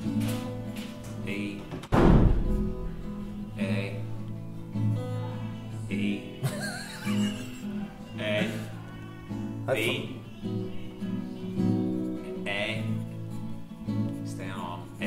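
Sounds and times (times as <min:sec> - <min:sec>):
acoustic guitar strummed: 0:00.0 - 0:15.0
loud thump: 0:01.8 - 0:03.1.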